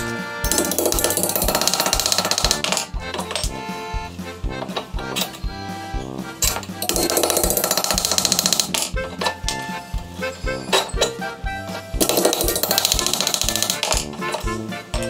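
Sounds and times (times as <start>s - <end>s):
background music with steady beat: 0.0s - 15.0s.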